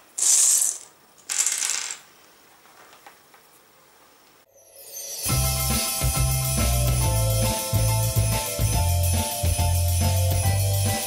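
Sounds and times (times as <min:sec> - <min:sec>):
dry pasta clattering on cardboard: 0:00.2 - 0:02.0.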